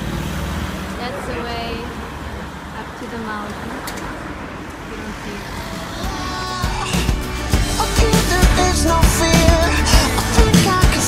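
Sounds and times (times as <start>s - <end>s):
passing cars traffic noise: 0.0s - 11.0s.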